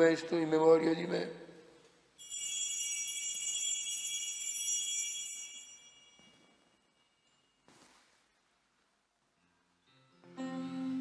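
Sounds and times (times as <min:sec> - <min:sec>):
altar bells ringing: 0:02.2 - 0:07.6.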